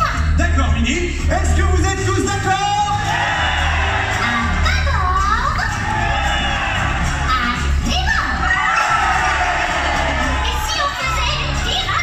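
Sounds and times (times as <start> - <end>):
music with bass line: 0.0 - 12.0
children shouting and cheering: 3.0 - 12.0.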